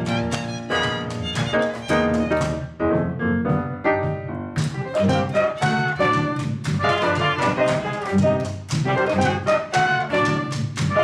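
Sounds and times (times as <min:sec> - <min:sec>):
jazz band playing: 0:00.0 - 0:11.0
amplified violin lead: 0:04.8 - 0:11.0.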